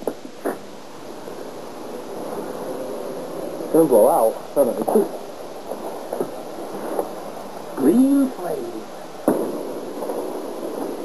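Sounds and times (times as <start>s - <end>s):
firework fizzing hiss: 0.0s - 11.0s
short firework burst: 9.2s - 11.0s.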